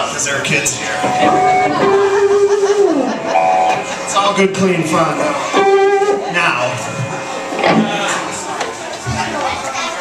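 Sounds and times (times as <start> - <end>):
indistinct room chatter: 0.0 - 10.0
faint instrument: 0.6 - 8.8.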